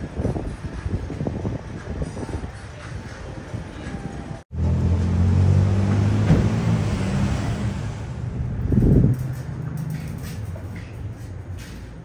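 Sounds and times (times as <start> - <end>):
city street traffic: 0.0 - 12.0
vehicle engine humming: 3.0 - 12.0.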